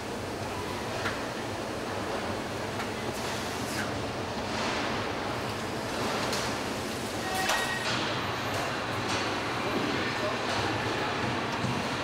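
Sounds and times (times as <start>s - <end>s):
factory hall ambient noise: 0.0s - 12.0s.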